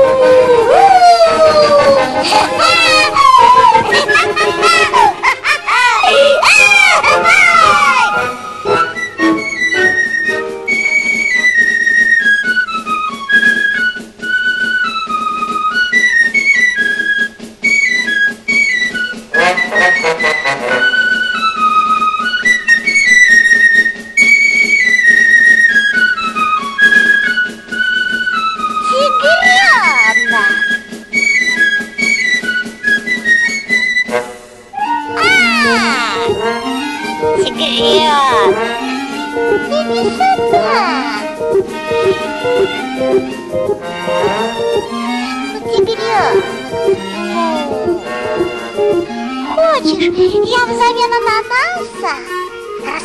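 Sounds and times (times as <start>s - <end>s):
cartoon background music: 0.0s - 53.0s
high flute-like melody: 0.0s - 53.0s.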